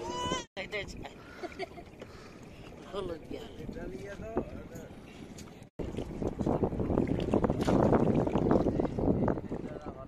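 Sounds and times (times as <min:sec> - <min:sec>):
wind buffeting microphone: 0:02.8 - 0:10.0.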